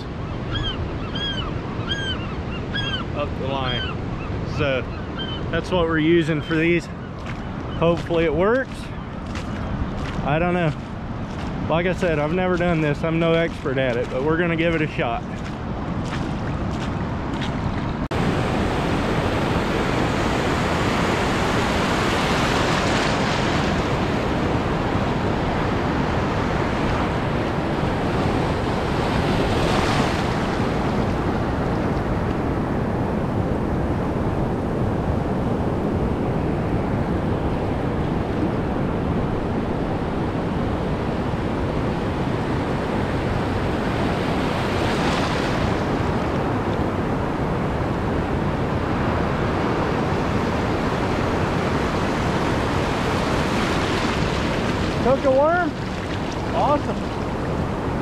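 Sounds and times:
gulls calling: 0.0s - 17.1s
breaking surf rushing: 18.1s - 58.0s.

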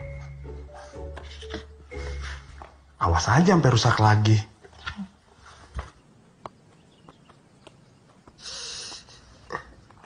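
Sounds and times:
person hissing breath: 8.4s - 9.4s.

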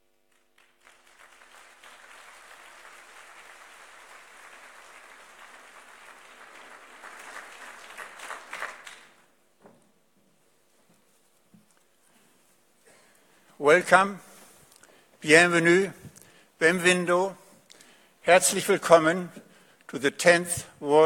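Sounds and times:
large audience applauding: 0.3s - 9.3s.

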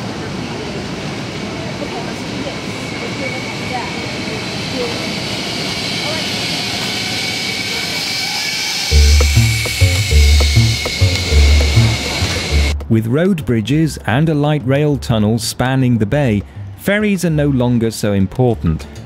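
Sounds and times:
faint voices: 0.0s - 8.1s
zipline trolleys whirring on cables: 0.0s - 12.7s
music with deep bass line: 8.9s - 13.1s.

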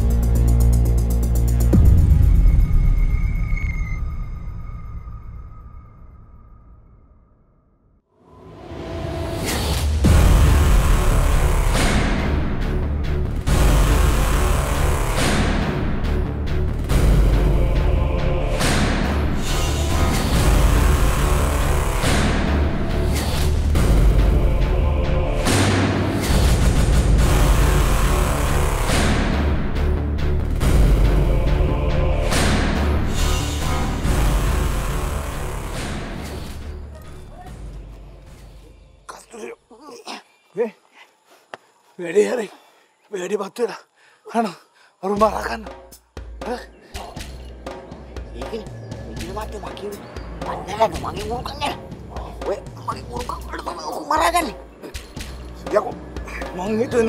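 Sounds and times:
background music: 0.0s - 6.7s, 8.1s - 40.7s, 44.3s - 57.0s
dramatic background score: 0.0s - 57.0s.

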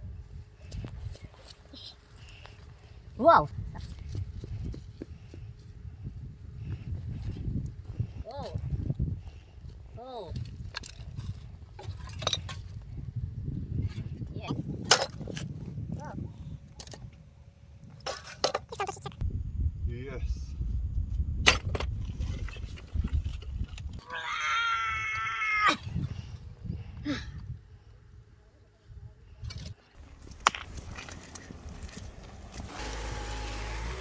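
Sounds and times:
low rumble: 19.2s - 24.0s.

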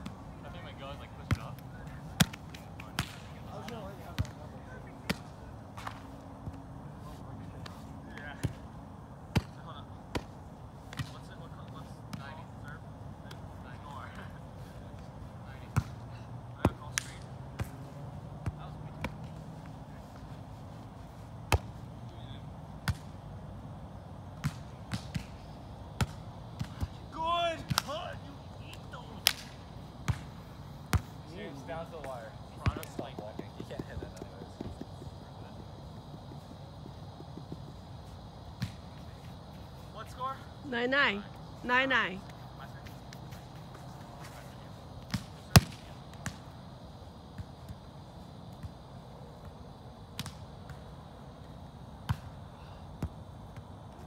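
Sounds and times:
hands slapping volleyball: 1.3s - 4.4s, 16.7s - 17.8s, 28.7s - 30.3s, 32.0s - 35.0s.

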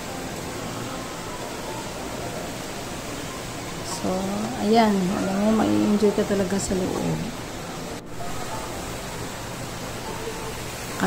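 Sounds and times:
faint distant voices: 0.0s - 11.0s
indoor mall hiss: 0.0s - 11.0s.

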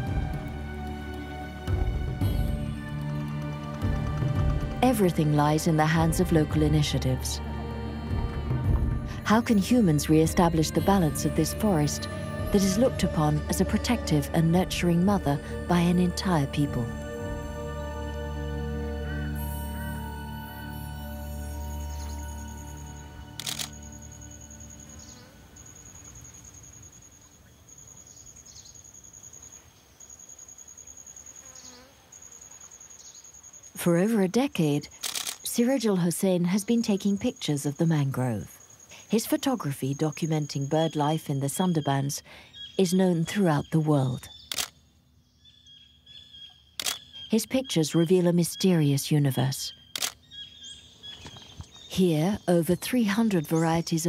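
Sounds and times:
soft background music: 0.0s - 26.3s
high-pitched insect trill: 19.2s - 33.8s.

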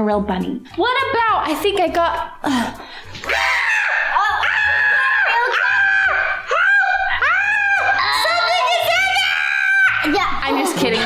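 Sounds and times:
woman screaming with laughter: 3.2s - 10.0s.

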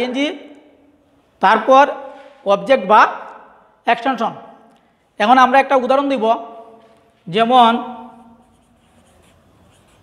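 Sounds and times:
marker scratching on whiteboard: 8.0s - 10.0s.

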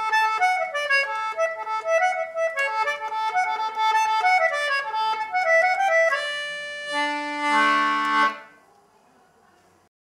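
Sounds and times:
concertina playing: 0.0s - 8.6s.

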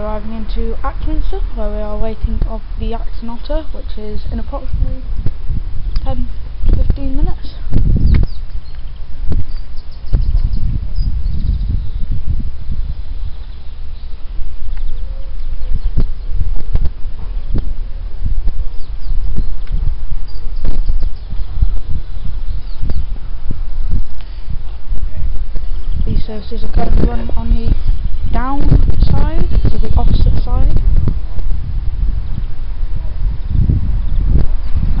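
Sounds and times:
wind buffeting microphone: 0.0s - 35.0s
faint bird chirps: 8.0s - 12.1s, 12.7s - 16.4s.

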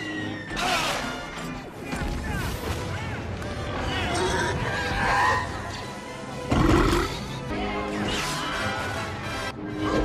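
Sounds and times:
orchestral score: 0.0s - 10.0s.

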